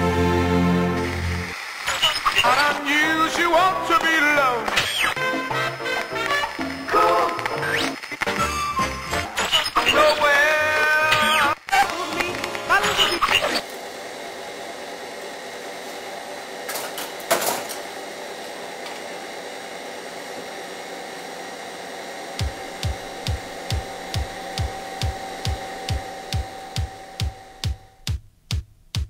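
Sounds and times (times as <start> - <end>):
film projector whirring and rattling: 0.0 - 28.0
electronic kick drum beat: 22.4 - 29.0.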